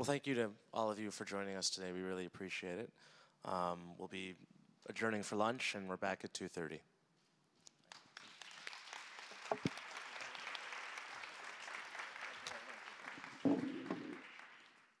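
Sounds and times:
audience applause: 7.9s - 15.0s.

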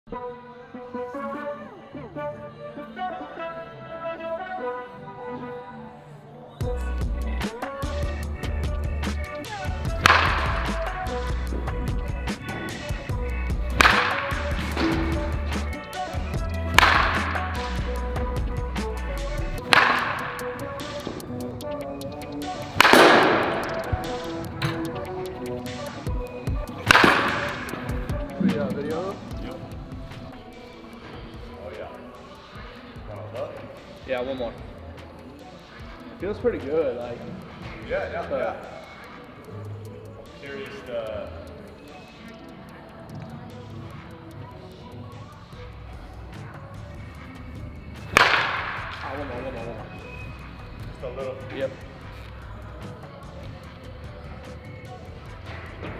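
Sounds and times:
background music with beat: 6.6s - 55.9s
baseball bat cracking ball: 9.9s - 10.8s, 13.7s - 15.3s, 16.7s - 17.5s, 19.6s - 21.2s, 22.7s - 24.0s, 26.8s - 28.1s, 48.1s - 49.1s.

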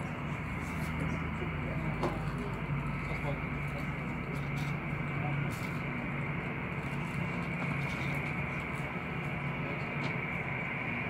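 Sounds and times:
faint voices: 0.0s - 11.0s
jet engines idling: 0.0s - 11.0s.

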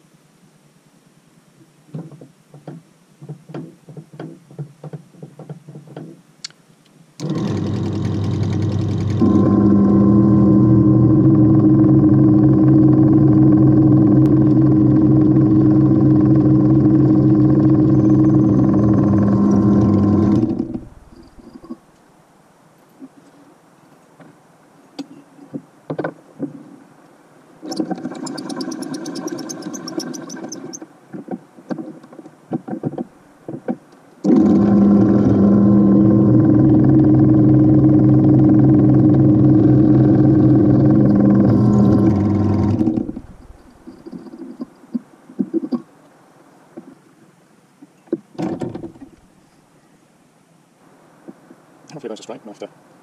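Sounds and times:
drill press drilling through metal: 7.2s - 20.9s, 34.2s - 36.9s, 37.9s - 43.6s.

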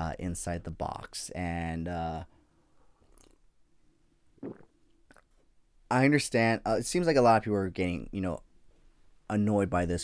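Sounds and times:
person sipping and swallowing: 3.0s - 3.4s, 4.4s - 5.3s.

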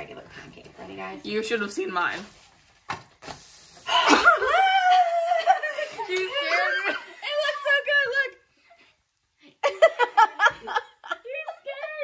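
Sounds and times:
pancake sizzling in a pan: 0.0s - 11.1s.

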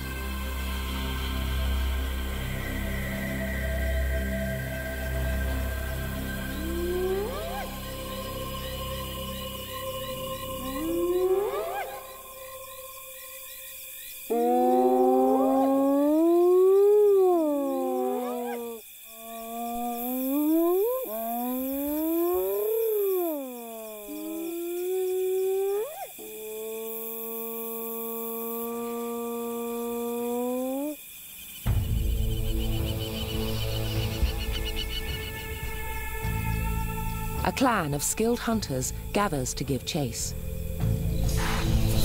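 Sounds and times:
hyenas whooping: 6.6s - 8.0s, 10.0s - 12.6s, 14.3s - 19.8s.

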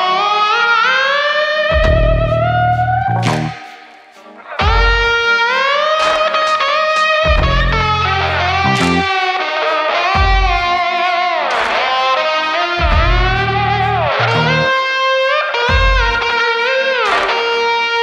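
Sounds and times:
electric slide guitar: 0.0s - 18.0s
low bass notes: 1.8s - 3.6s, 7.3s - 9.1s, 12.9s - 14.7s.

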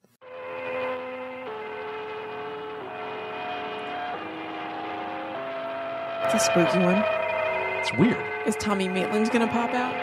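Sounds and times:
chime tones: 0.6s - 10.0s.

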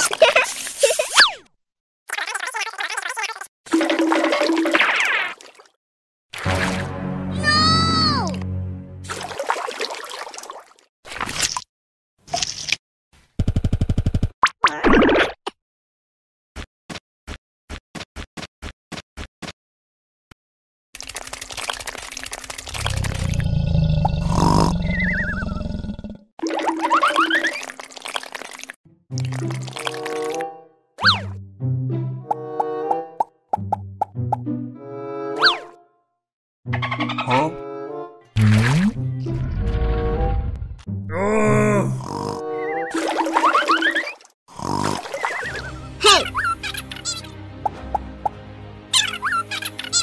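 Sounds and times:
gurgling flushing water: 21.0s - 25.4s.

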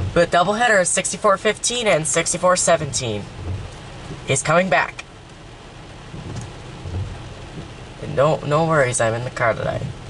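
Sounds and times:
low rumble: 0.0s - 0.8s, 1.8s - 10.0s
rain hissing on a car: 0.0s - 10.0s.

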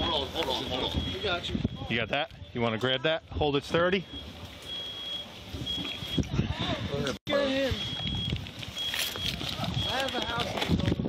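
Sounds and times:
faint high beep: 0.5s - 1.9s, 4.0s - 6.3s, 7.3s - 10.2s.

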